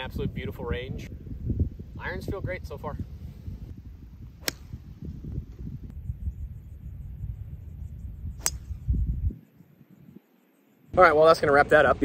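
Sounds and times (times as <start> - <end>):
wind rumbling on microphone: 0.0 - 10.3
golf club striking ball: 4.4 - 4.8, 8.4 - 8.9.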